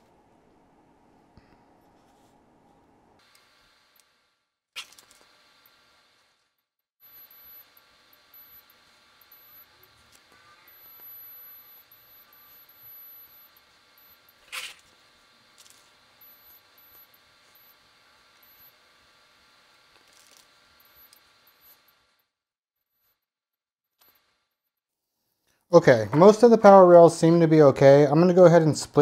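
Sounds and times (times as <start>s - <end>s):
steady electrical hum: 7.0s - 22.3s, 25.8s - 29.0s.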